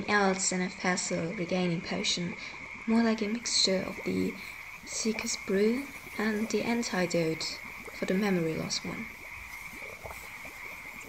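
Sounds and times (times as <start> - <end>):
constant high-pitched hum: 0.0 - 11.0.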